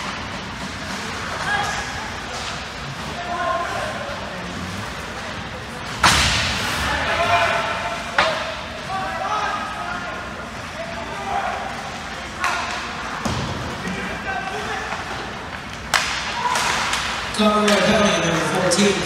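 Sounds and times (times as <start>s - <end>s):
spectators chatting: 0.0s - 19.0s
hockey puck impacts: 5.8s - 6.9s, 8.0s - 8.7s, 11.8s - 18.1s.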